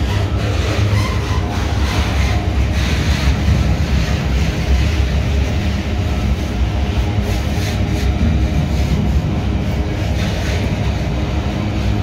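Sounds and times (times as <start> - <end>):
steel wheels rumbling on rails: 0.0 - 12.0.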